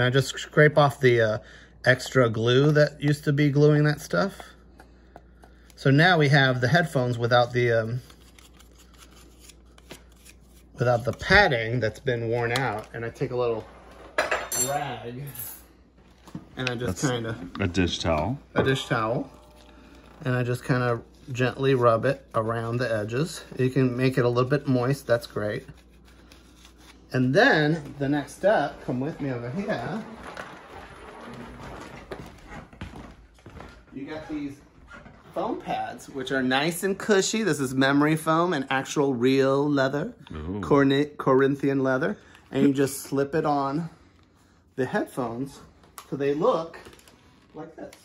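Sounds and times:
footsteps on floor: 28.7 - 35.4.

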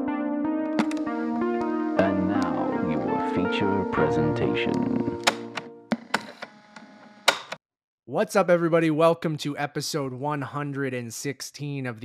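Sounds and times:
sharp clicks: 0.7 - 1.7.

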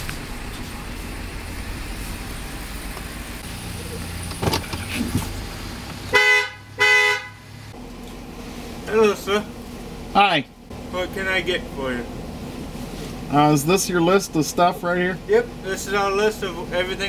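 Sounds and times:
car engine running low: 0.0 - 17.0
short car horn honks: 6.1 - 7.5.

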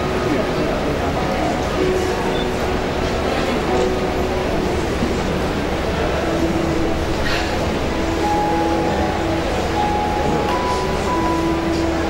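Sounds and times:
faint held notes: 0.0 - 12.0
loud steady rumbling: 0.0 - 12.0.

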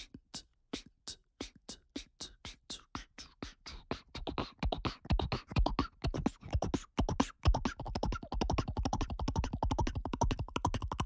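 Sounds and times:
soft breathy beatboxing: 0.0 - 11.0.

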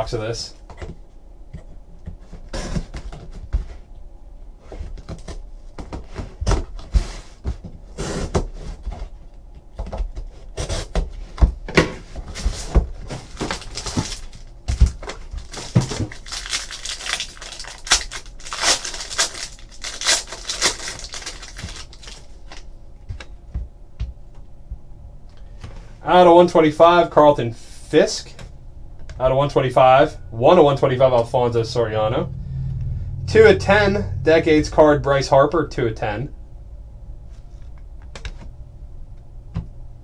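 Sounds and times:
cardboard ripping: 13.2 - 22.2.

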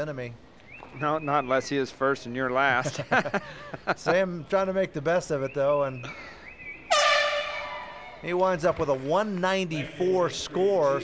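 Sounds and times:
arena horn blast: 6.9 - 8.2.

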